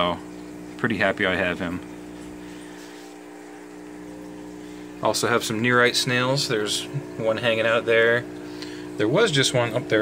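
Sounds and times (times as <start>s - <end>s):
aquarium equipment humming: 0.0s - 10.0s
low steady tones: 1.9s - 6.4s.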